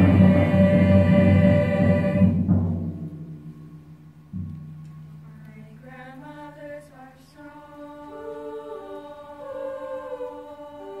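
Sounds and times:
female choir holding a chord: 0.0 - 2.5, 5.6 - 11.0
deep drum strokes: 0.0 - 5.3.

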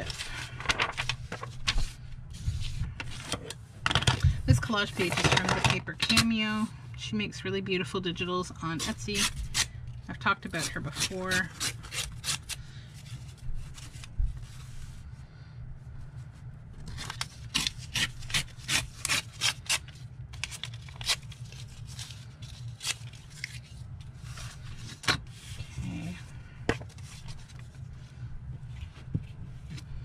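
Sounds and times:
paper rustling and scraping: 0.0 - 4.1, 11.0 - 15.0, 16.2 - 26.1, 26.7 - 29.9
steady low hum: 0.0 - 30.0.

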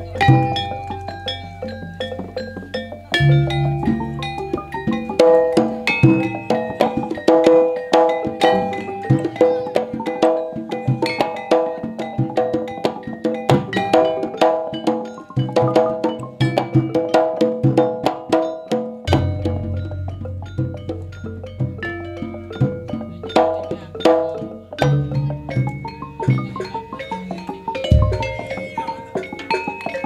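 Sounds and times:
bronze kettle gongs ringing: 0.0 - 12.8, 18.5 - 30.0
drum strokes: 0.0 - 29.9.

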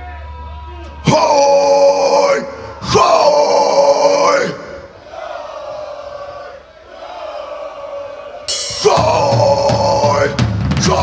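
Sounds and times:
crowd noise: 0.0 - 11.0
band with drums and cymbal: 8.4 - 11.0
man shouting through pa: 8.7 - 11.0.

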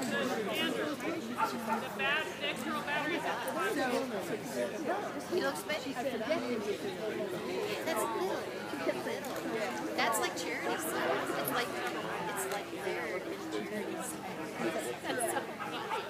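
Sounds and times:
chatter of people in a hall: 0.0 - 16.0.

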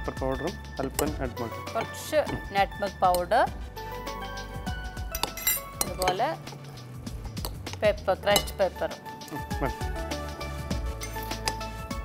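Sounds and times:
background music: 0.0 - 12.0
metal spoon clinking ceramic bowl: 5.1 - 6.2, 7.4 - 8.6.

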